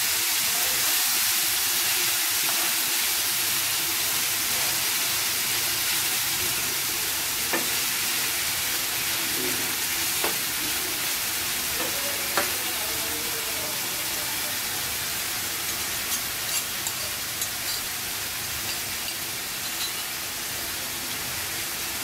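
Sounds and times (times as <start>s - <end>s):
meat sizzling in oil: 0.0s - 22.0s.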